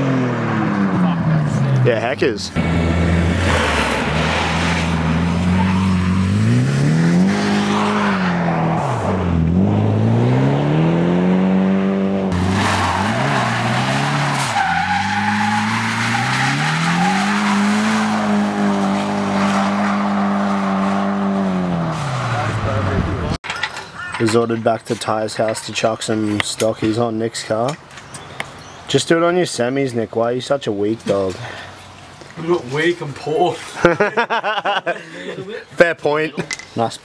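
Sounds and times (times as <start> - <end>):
car engine revving: 0.0 - 23.4
tyres squealing: 4.6 - 6.6, 12.4 - 20.8.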